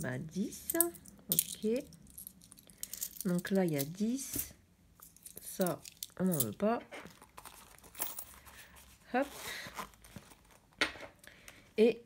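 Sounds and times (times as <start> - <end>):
fabric purse rustling: 7.0 - 10.8.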